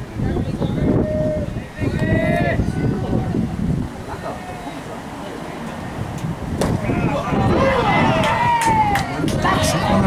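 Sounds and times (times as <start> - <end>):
players calling out: 6.7 - 10.0.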